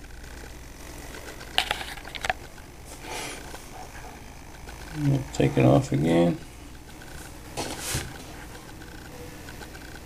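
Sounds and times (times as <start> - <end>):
sharp clicks and rattles: 0.0 - 2.8, 4.5 - 5.1, 6.7 - 7.4, 8.1 - 10.0
motor wheel humming: 0.0 - 10.0.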